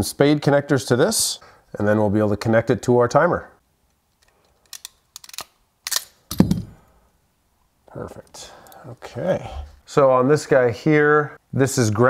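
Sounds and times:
crimping tool thunk: 0:06.3 - 0:06.8.

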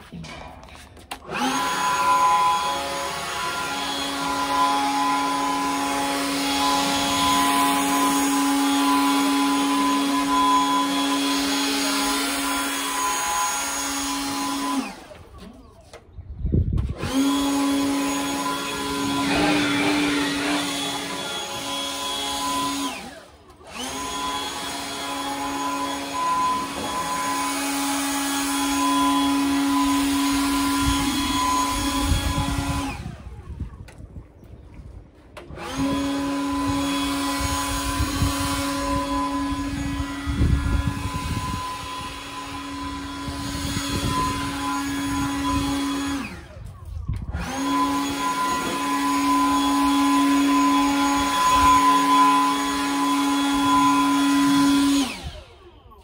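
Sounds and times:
leaf blower whining: 0:00.0 - 0:16.2, 0:16.8 - 0:34.0, 0:35.3 - 0:56.0.

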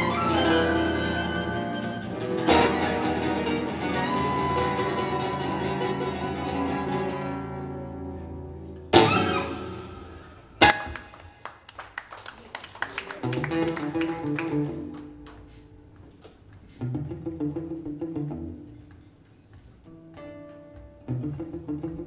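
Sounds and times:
acoustic guitars playing: 0:00.0 - 0:11.4, 0:13.2 - 0:16.0, 0:16.7 - 0:19.0, 0:19.8 - 0:22.0.

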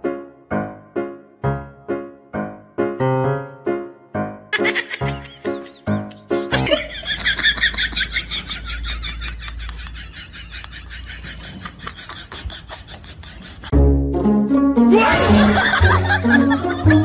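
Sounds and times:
piano notes: 0:00.0 - 0:09.9, 0:13.5 - 0:17.0.

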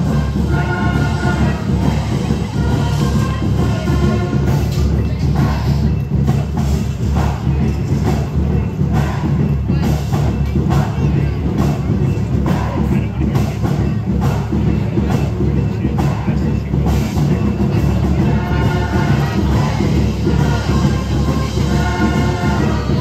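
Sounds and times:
marching band playing: 0:00.0 - 0:23.0.

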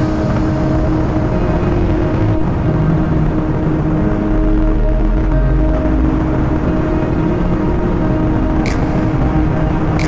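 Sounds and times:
slow ambient music: 0:00.0 - 0:10.0
vehicle and road rumble: 0:00.0 - 0:10.0.

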